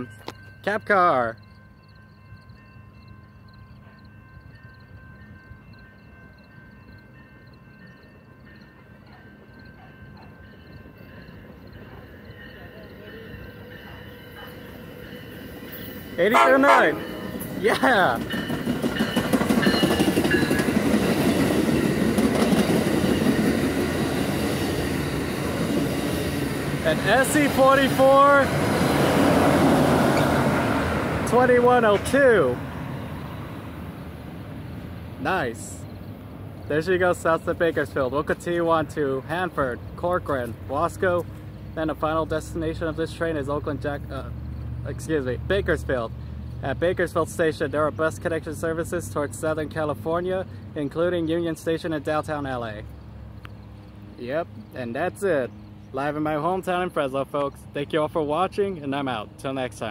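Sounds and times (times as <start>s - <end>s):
railroad crossing bell ringing: 0.0s - 59.9s
train rumble: 0.0s - 59.9s.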